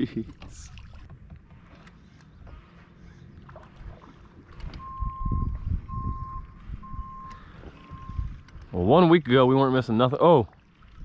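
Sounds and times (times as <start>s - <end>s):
low rumbling thumps: 3.8s - 8.7s
electronic beeper beeping: 4.8s - 8.4s.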